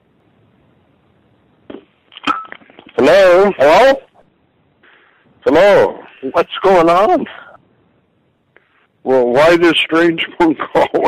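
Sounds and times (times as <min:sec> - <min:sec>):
faint line hiss: 0:00.0 - 0:11.0.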